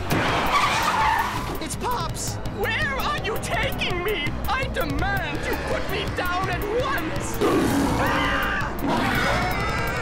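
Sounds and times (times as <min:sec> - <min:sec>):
cartoon tyre screech: 0:00.5 - 0:01.6.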